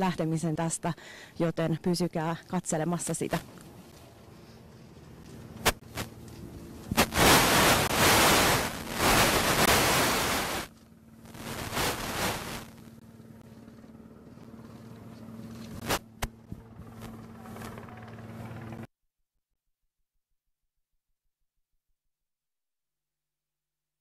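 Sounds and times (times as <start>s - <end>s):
low engine hum: 0.0s - 8.2s, 12.7s - 18.9s.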